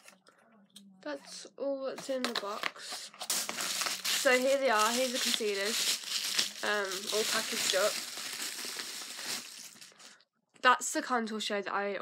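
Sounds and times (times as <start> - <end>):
bubble wrap crinkling: 2.0 - 10.1.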